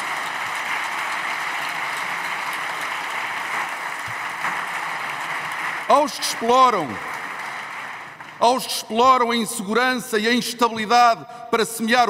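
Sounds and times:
steady applause: 0:00.0 - 0:10.4
person giving a speech: 0:05.9 - 0:07.1, 0:08.4 - 0:12.0.

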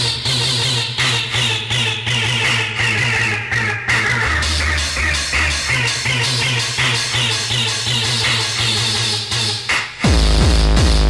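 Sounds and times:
pulsing bass line: 0:00.0 - 0:11.0.

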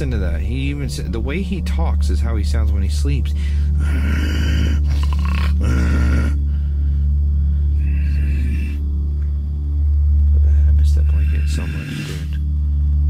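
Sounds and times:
steady low hum: 0:00.0 - 0:13.0
breathy sound: 0:03.3 - 0:09.4, 0:10.3 - 0:12.5
man groaning sigh in sleep: 0:03.8 - 0:06.5.

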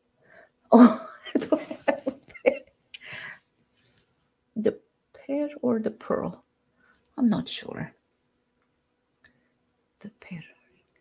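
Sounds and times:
person whispering: 0:10.0 - 0:10.7.

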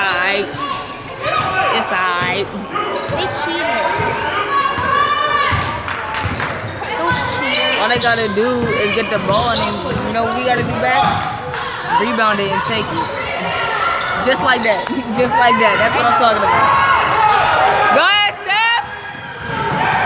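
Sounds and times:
basketball bouncing on wooden floor: 0:07.9 - 0:11.3.

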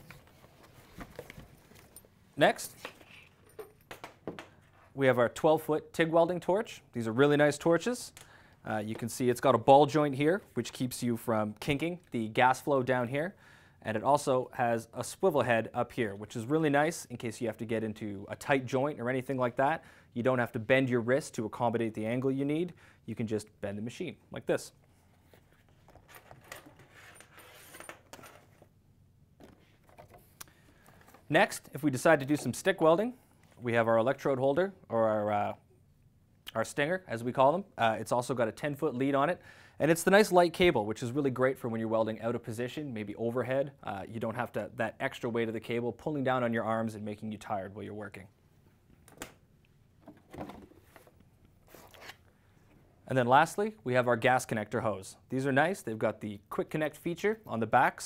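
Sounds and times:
soft rustling: 0:00.0 - 0:03.5.

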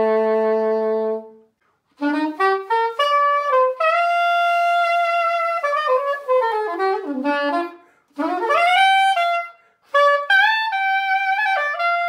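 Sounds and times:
soprano saxophone solo: 0:00.0 - 0:12.0.

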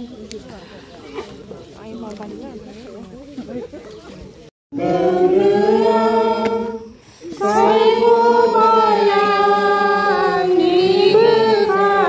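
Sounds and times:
person singing unaccompanied: 0:04.7 - 0:12.0.

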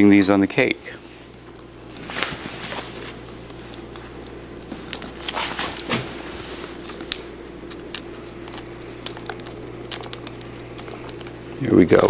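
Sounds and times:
steady low hum: 0:00.0 - 0:12.0
clicks and rustles of handling: 0:01.5 - 0:12.0.

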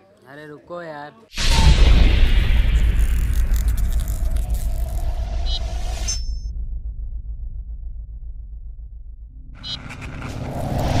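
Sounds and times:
whoosh: 0:01.4 - 0:11.0
deep steady rumble: 0:01.6 - 0:11.0.

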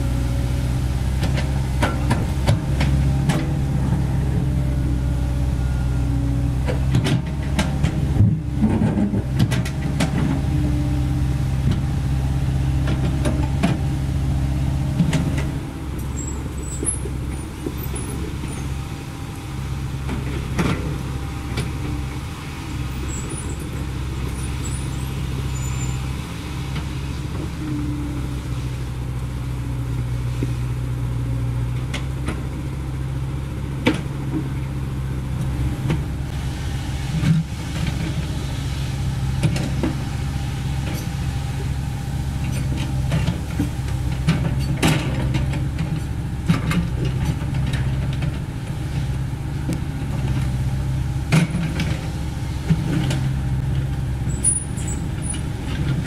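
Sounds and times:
excavator diesel engine running: 0:00.0 - 0:56.0.

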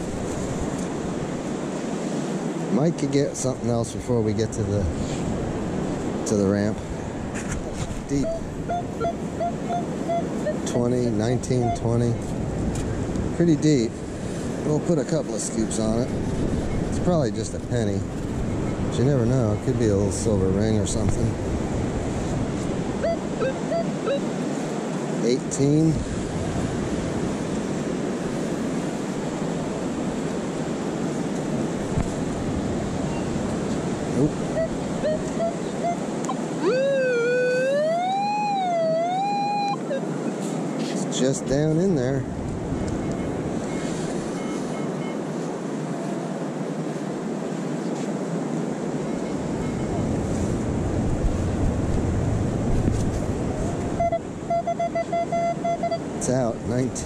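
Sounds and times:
surf: 0:00.0 - 0:57.0
wind: 0:00.0 - 0:57.0
metal detector beeps: 0:08.0 - 0:12.2, 0:23.0 - 0:24.3, 0:34.2 - 0:40.1, 0:42.8 - 0:45.2, 0:53.8 - 0:56.1
wavering pitched tone: 0:08.1 - 0:12.2, 0:23.0 - 0:24.3, 0:34.2 - 0:40.2, 0:53.6 - 0:56.1.

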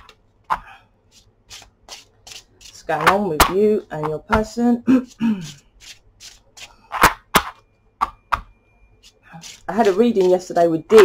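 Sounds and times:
cards being shuffled: 0:01.1 - 0:03.2, 0:05.4 - 0:07.2, 0:09.4 - 0:10.4.

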